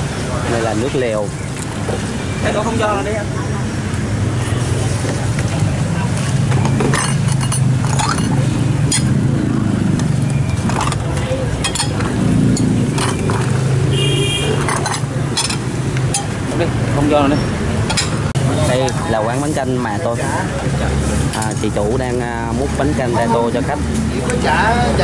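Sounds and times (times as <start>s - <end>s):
low traffic hum: 0.0s - 25.0s
metal utensils clinking: 6.6s - 9.2s, 10.6s - 13.6s, 14.5s - 16.4s, 17.8s - 18.3s.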